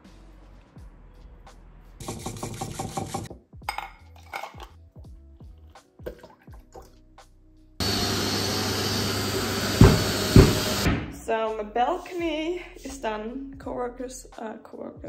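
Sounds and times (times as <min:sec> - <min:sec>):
whisk beating in a bowl: 0:02.0 - 0:03.3
industrial vacuum running: 0:07.8 - 0:11.1.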